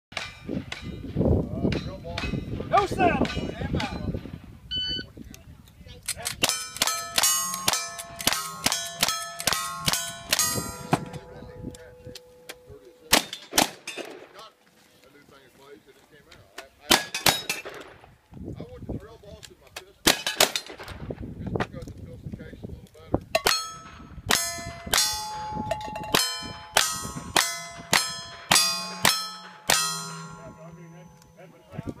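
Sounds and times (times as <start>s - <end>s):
steel target ringing clang: 6.4s - 14.6s, 23.4s - 32.0s
rifle shots: 13.1s - 14.4s.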